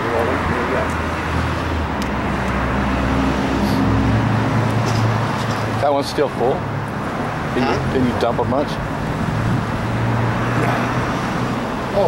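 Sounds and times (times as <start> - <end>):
road noise: 0.0 - 12.0
vehicle engine humming: 0.0 - 12.0.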